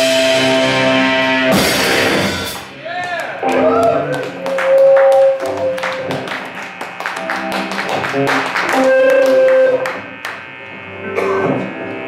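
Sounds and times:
drums and cymbals: 0:00.0 - 0:02.9
bass guitar: 0:00.0 - 0:12.0
electric guitar: 0:00.0 - 0:12.0.

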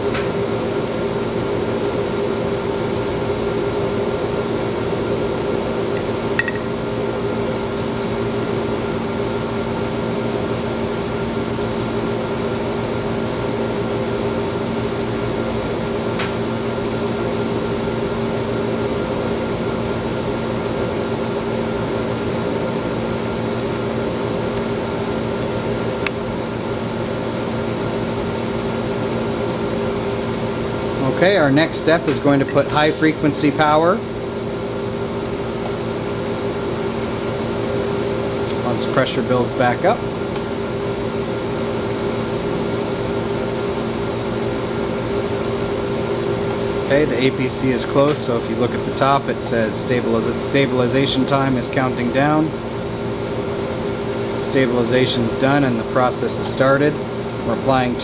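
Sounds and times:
equipment hum with vacuum pump: 0:00.0 - 0:58.0.

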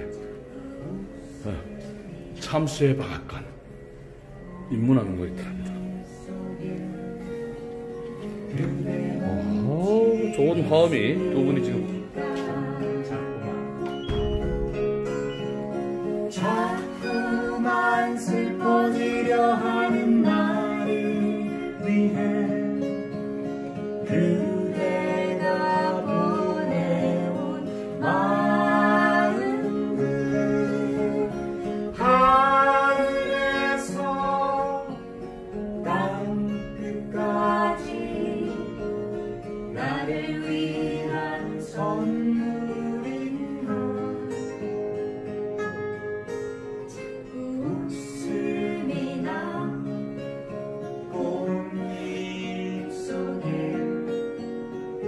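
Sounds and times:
man and woman singing duet: 0:00.0 - 0:02.2, 0:04.6 - 0:14.1, 0:15.6 - 0:44.9, 0:46.9 - 0:55.0
acoustic guitars: 0:00.0 - 0:55.0.

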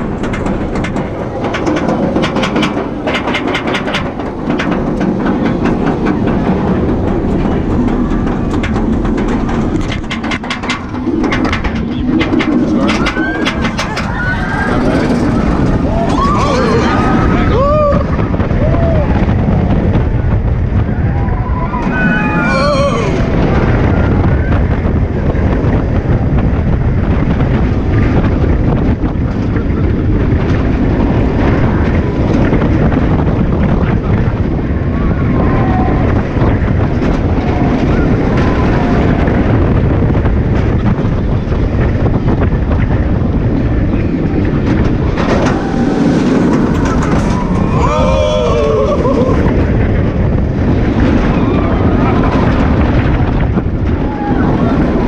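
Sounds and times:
roller coaster train on track: 0:00.0 - 0:55.0
wind buffeting microphone: 0:00.0 - 0:55.0
riders screaming: 0:12.8 - 0:19.2, 0:20.9 - 0:24.5, 0:45.3 - 0:49.8.

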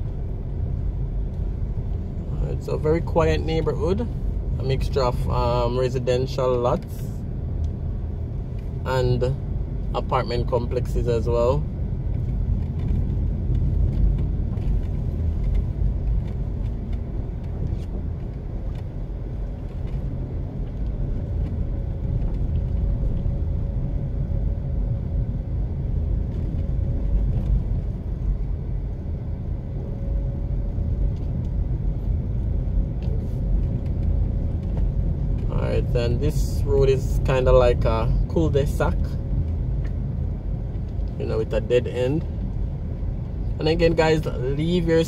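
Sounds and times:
car engine and tyres rumbling: 0:00.0 - 0:45.0.

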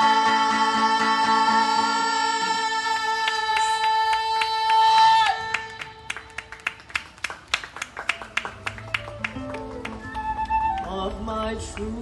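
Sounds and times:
hands clapping: 0:05.4 - 0:12.0.

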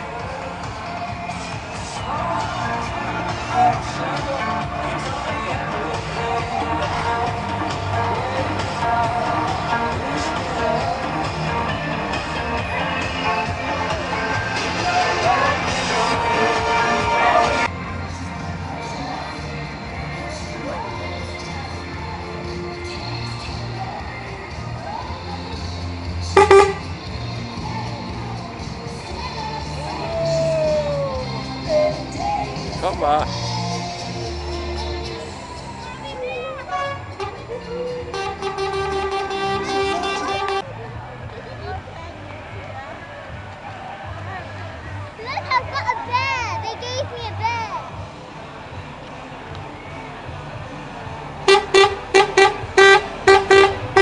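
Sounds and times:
music playing: 0:00.0 - 0:54.0
short horn toots: 0:26.4 - 0:26.9, 0:51.5 - 0:54.0.

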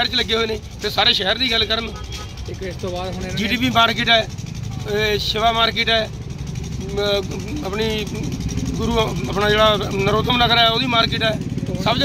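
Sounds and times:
man speaking: 0:00.0 - 0:06.1, 0:06.8 - 0:12.0
street traffic rumble: 0:00.0 - 0:12.0.

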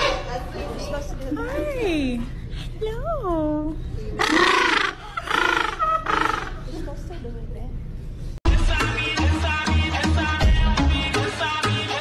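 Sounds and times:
penguin calling: 0:04.2 - 0:06.7.

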